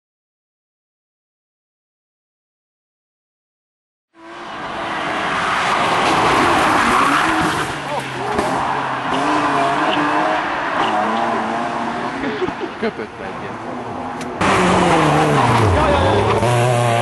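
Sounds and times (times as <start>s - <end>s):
rally car engine revving: 4.2s - 12.8s, 13.5s - 17.0s
tyre noise on road: 4.2s - 17.0s.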